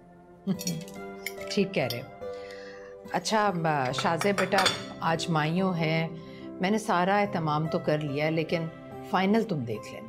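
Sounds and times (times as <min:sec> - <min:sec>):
cutlery and dishes clinking: 0:00.5 - 0:02.1, 0:03.8 - 0:05.0.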